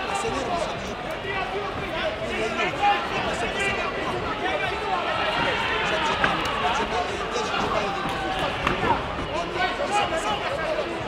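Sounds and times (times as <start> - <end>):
chatter of many voices: 0.0 - 11.0.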